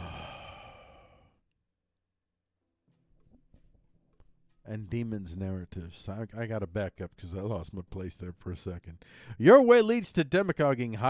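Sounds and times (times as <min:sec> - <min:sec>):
man sighing: 0:00.0 - 0:01.4.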